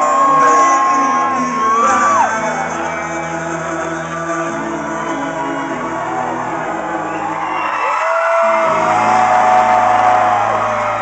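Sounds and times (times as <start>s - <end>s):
crowd whooping: 0.0s - 11.0s
live country band playing: 0.0s - 11.0s.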